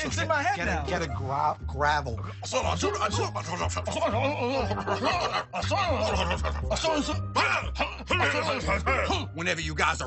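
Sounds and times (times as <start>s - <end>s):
background music with bass line: 0.0s - 10.0s
men snickering and chuckling: 3.1s - 9.1s.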